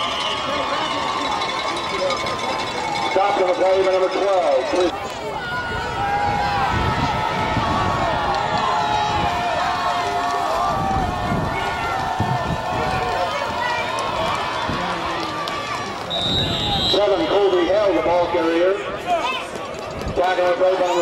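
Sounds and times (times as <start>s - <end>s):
referee's whistle: 0.0s - 1.0s, 16.1s - 17.7s
spectators shouting and cheering: 0.0s - 21.0s.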